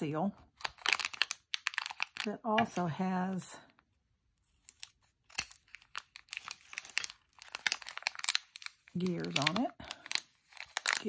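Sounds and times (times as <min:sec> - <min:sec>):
plastic packet crinkling: 0:00.5 - 0:02.8, 0:04.6 - 0:11.0.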